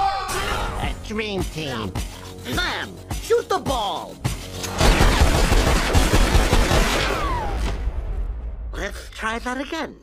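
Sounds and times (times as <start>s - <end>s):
cartoon pistol shots: 4.7s - 7.8s.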